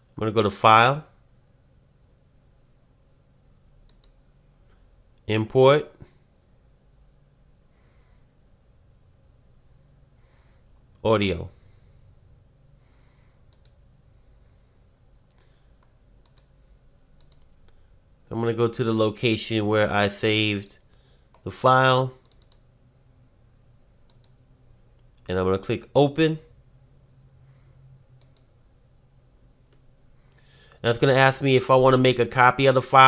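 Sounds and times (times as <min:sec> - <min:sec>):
low steady hum: 0:00.0 - 0:33.0
faint computer mouse clicks: 0:03.8 - 0:05.3, 0:13.5 - 0:13.8, 0:15.3 - 0:16.5, 0:17.2 - 0:18.0, 0:22.2 - 0:22.6, 0:24.1 - 0:24.4, 0:28.2 - 0:28.5.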